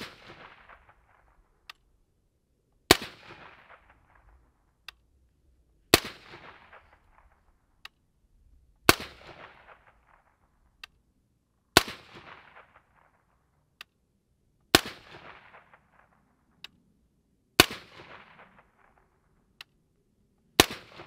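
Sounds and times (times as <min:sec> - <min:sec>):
suppressed rifle shots with echo: 0:00.0 - 0:02.0, 0:02.8 - 0:05.2, 0:05.8 - 0:11.0, 0:11.6 - 0:13.8, 0:14.7 - 0:16.6, 0:17.5 - 0:19.6, 0:20.5 - 0:21.0
faint sharp tick: 0:19.6 - 0:19.8.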